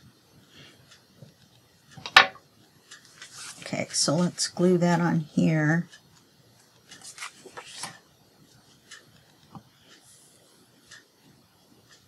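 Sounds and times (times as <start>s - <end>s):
paper and tools handling: 7.0s - 8.0s.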